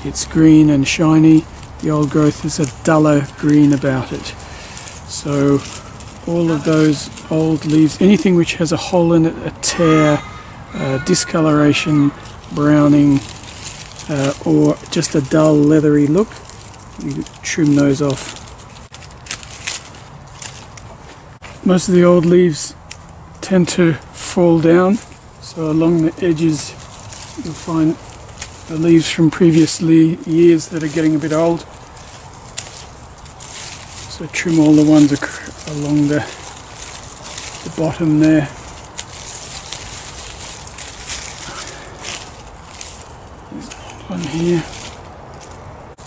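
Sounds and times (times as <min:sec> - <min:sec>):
leaves crackling and rustling: 0:00.0 - 0:46.0
secateurs snipping stalks: 0:01.3 - 0:08.5, 0:11.8 - 0:21.6, 0:22.2 - 0:23.4, 0:24.9 - 0:46.0.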